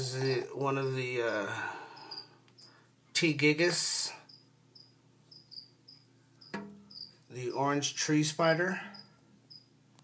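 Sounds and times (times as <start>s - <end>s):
cricket chirping: 1.9s - 2.8s, 4.2s - 7.2s, 8.9s - 9.7s.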